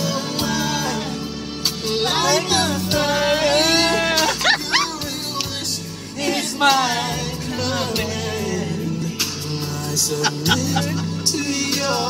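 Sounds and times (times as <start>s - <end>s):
music playing in a car: 0.0s - 12.0s
man singing loudly: 1.9s - 12.0s.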